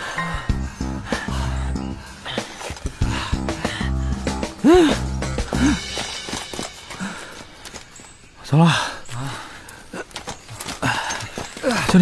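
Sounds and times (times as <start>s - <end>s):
footsteps on forest floor: 2.3s - 3.8s, 5.4s - 12.0s.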